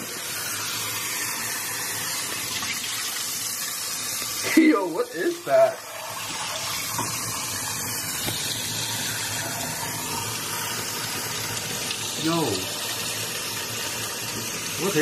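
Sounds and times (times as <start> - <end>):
tap water splashing onto ice: 8.2 - 8.5.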